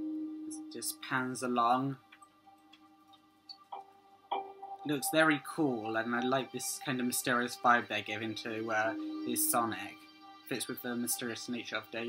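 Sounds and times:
faint atmospheric music: 0:00.0 - 0:12.0.

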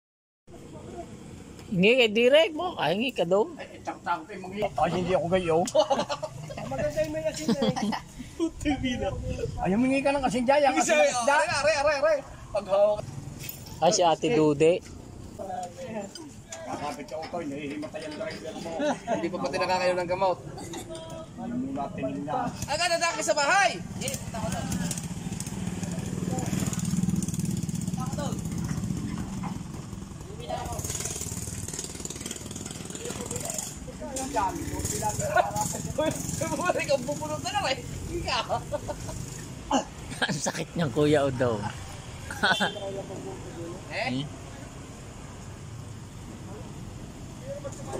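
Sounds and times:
people talking: 0:01.8 - 0:13.0, 0:15.4 - 0:25.0, 0:32.9 - 0:38.7
motorcycle engine idling: 0:23.9 - 0:38.3.

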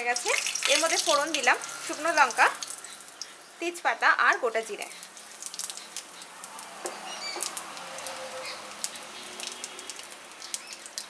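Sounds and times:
oil sizzling: 0:00.0 - 0:11.0
spices crackling and popping: 0:00.0 - 0:11.0.

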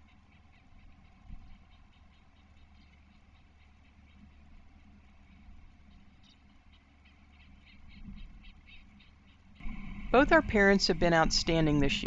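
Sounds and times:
low steady rumble: 0:00.0 - 0:12.0
ospreys chirping: 0:00.0 - 0:12.0.

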